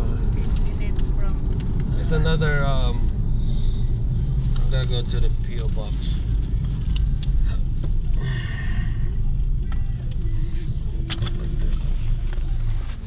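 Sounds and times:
car engine and road rumble: 0.0 - 13.0.

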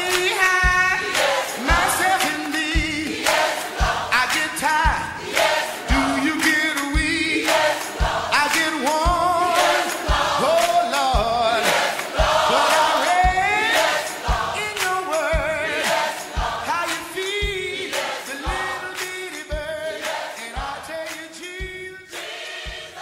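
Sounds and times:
band accompaniment: 0.0 - 23.0
bass drum beat: 0.0 - 23.0
gospel choir singing: 0.0 - 23.0.

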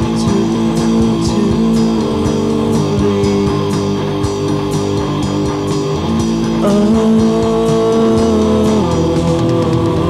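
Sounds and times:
drums with cymbal hits: 0.0 - 10.0
sustained guitar chords: 0.0 - 10.0.

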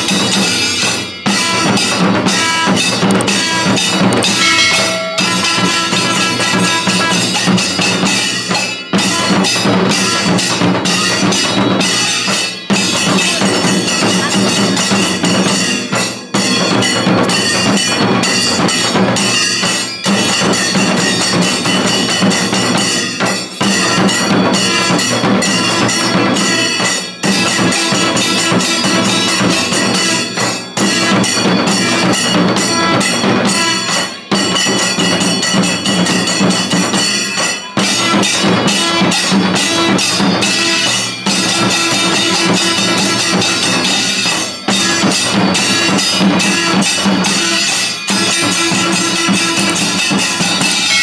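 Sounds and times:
barrel drums beaten with sticks: 0.0 - 51.0
metal cymbals struck: 0.0 - 51.0.

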